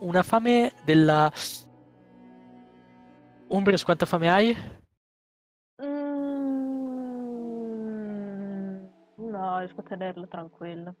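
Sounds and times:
person holding long vowel: 0:05.8 - 0:09.0.

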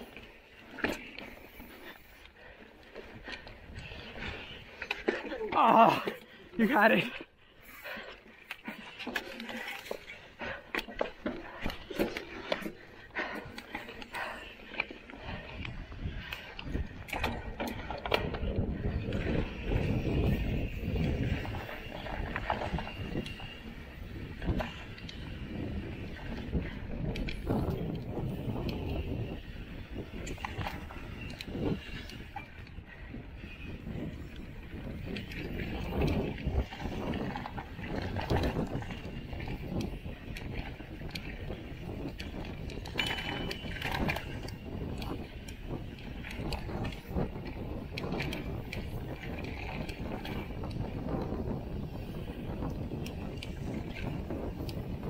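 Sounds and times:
bike rattling with clicks and knocks: 0:00.0 - 0:55.0
tyres rolling over dirt and rock: 0:07.8 - 0:51.0.

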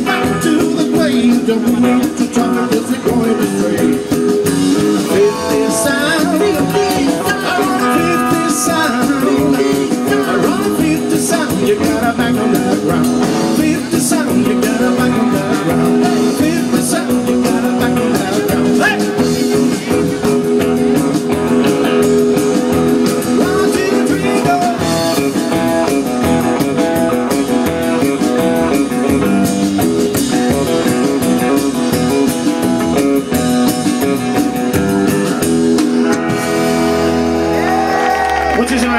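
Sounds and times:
drums: 0:00.0 - 0:38.9
electric guitar: 0:00.0 - 0:38.9
upright double bass: 0:00.0 - 0:38.9.

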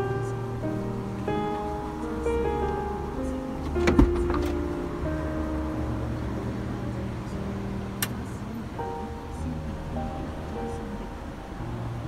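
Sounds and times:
background music with held notes: 0:00.0 - 0:12.0
door latch click: 0:03.6 - 0:04.6.

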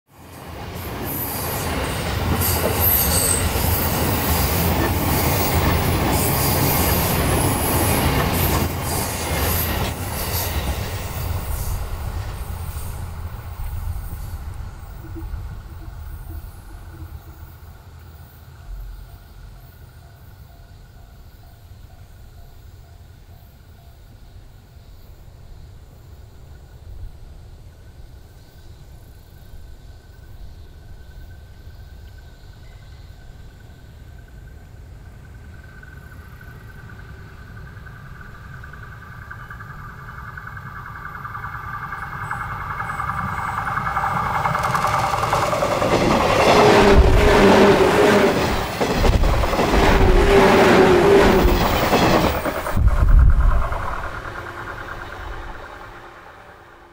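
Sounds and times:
electric train passing: 0:00.1 - 0:56.9
train wheels clattering over rail joints: 0:41.2 - 0:56.0.

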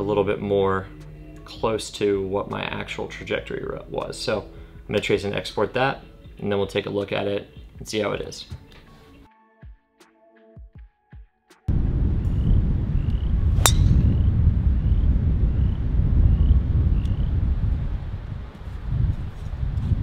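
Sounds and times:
soft music: 0:00.0 - 0:11.7, 0:13.5 - 0:14.0
wind rumble on microphone: 0:11.7 - 0:20.0
golf driver striking ball: 0:13.6 - 0:14.2.

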